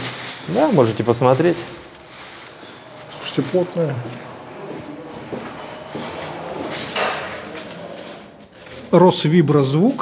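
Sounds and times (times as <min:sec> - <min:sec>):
plastic film rustling: 0:00.0 - 0:10.0
faint voices: 0:00.4 - 0:10.0.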